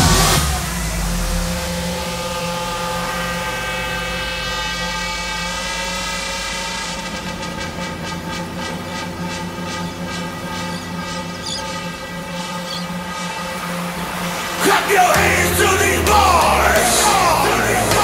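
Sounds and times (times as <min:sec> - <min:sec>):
electronic drone chord: 0:00.0 - 0:18.0
loud electronic dance music: 0:00.0 - 0:18.0.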